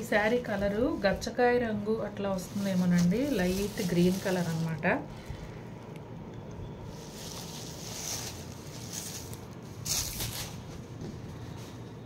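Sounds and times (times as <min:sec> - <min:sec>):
plastic sheet crinkling: 0:00.0 - 0:05.2, 0:06.9 - 0:11.1
fabric rustling and crinkling: 0:00.0 - 0:05.6, 0:06.8 - 0:12.0.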